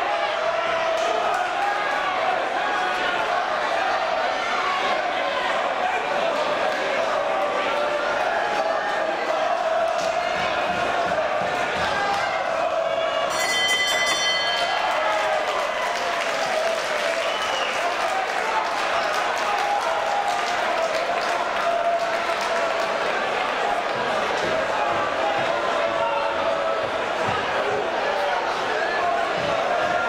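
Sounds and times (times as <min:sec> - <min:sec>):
crowd applauding: 0:00.0 - 0:13.4, 0:14.0 - 0:30.0
crowd shouting: 0:00.0 - 0:30.0
boxing ring bell: 0:13.3 - 0:15.2.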